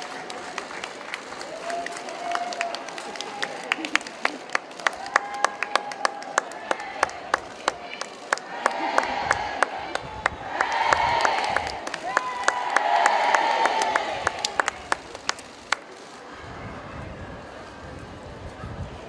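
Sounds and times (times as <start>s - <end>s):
crowd cheering and calling out: 0.0s - 17.0s.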